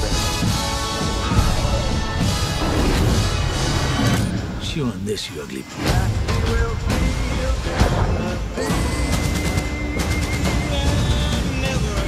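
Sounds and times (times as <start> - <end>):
trailer music: 0.0 - 5.0, 5.6 - 12.0.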